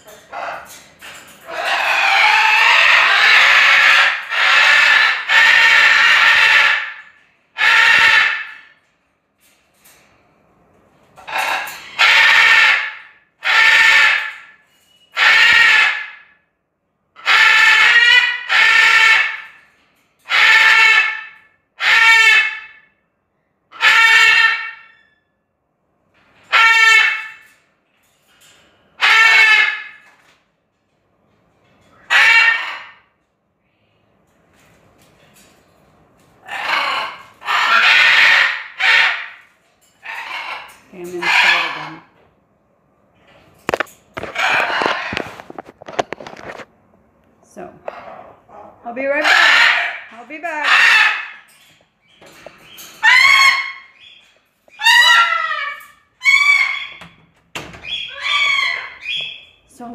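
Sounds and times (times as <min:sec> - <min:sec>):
macaw screaming: 0:01.5 - 0:07.0, 0:07.6 - 0:08.7, 0:11.3 - 0:14.5, 0:15.2 - 0:16.3, 0:17.2 - 0:19.5, 0:20.3 - 0:22.8, 0:23.8 - 0:24.9, 0:26.5 - 0:27.4, 0:29.0 - 0:30.0, 0:32.1 - 0:33.0, 0:36.4 - 0:42.1, 0:44.2 - 0:45.2, 0:49.1 - 0:51.5, 0:53.0 - 0:57.2, 0:57.8 - 0:59.5.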